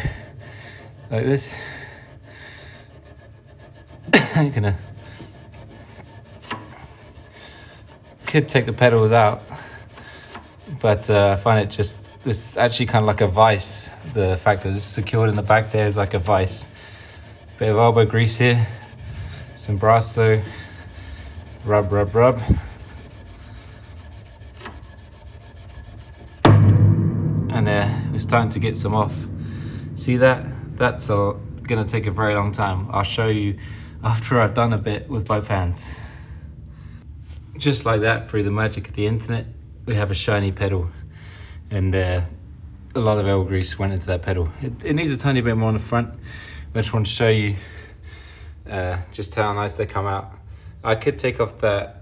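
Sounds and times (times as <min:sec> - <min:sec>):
steel wool scrubbing metal: 0:00.0 - 0:33.5.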